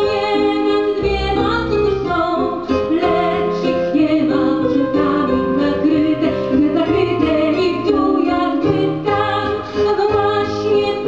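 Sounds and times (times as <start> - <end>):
instrumental accompaniment: 0.0 - 11.0
woman singing: 0.0 - 11.0.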